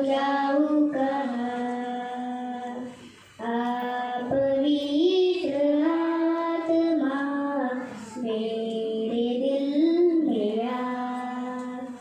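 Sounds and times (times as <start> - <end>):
girl singing into microphone: 0.0 - 12.0.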